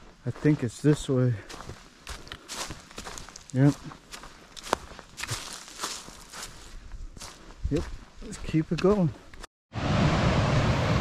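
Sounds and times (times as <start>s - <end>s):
footsteps on dry leaves: 0.0s - 9.4s.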